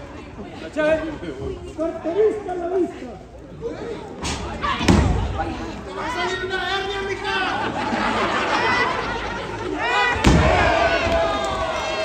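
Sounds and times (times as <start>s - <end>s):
crowd shouting and cheering: 4.4s - 12.0s.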